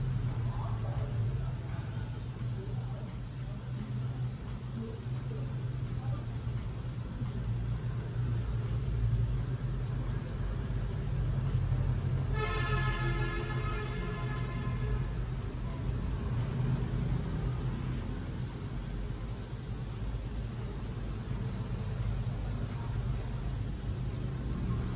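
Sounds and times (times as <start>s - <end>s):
road traffic rumble: 0.0s - 24.9s.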